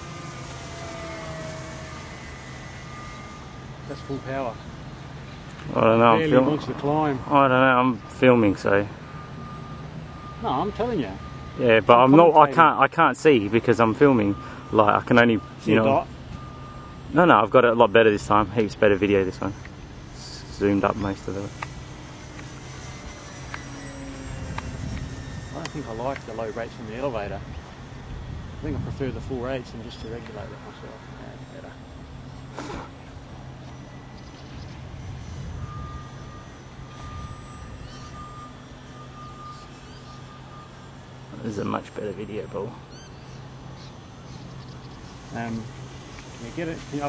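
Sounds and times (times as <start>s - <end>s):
model plane motor whine: 0.0s - 47.0s.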